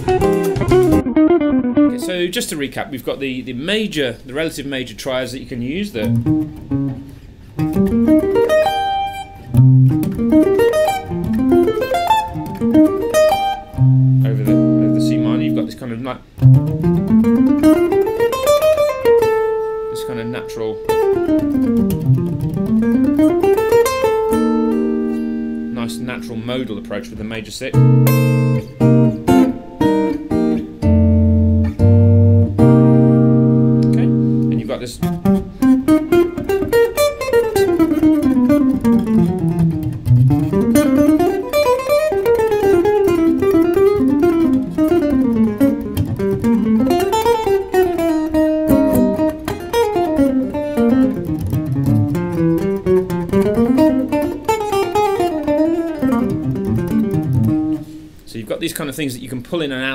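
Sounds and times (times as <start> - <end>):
clean electric jazz guitar: 0.0 - 58.9.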